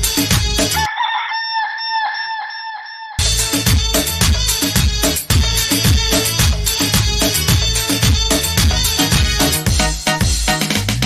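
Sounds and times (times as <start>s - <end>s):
dance music: 0.0s - 0.9s, 3.2s - 11.0s
rooster crowing: 0.8s - 3.2s.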